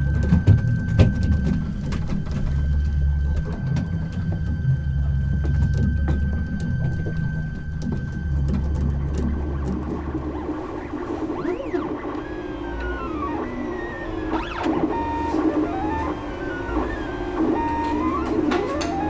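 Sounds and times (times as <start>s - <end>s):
background music: 0.0s - 19.0s
stepper motors whining: 0.0s - 19.0s.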